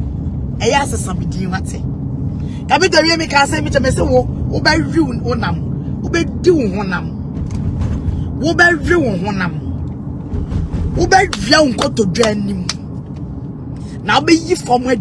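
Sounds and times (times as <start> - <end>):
car cabin rumble: 0.0 - 15.0.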